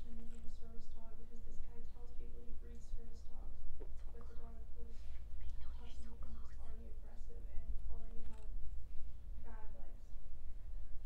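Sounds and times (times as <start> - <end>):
low room rumble: 0.0 - 11.0
woman whispering softly: 4.0 - 8.6.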